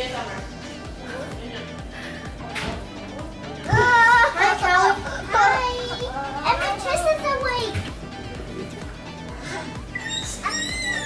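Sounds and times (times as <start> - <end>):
child crying out: 9.9 - 11.0.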